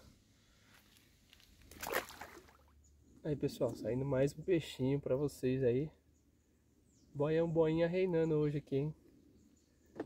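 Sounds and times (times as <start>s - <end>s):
fish splashing in water: 1.7s - 2.7s.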